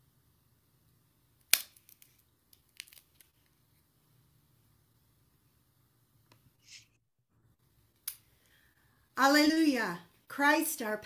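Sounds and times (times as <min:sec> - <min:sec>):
bread cracking and snapping: 0:01.4 - 0:03.5.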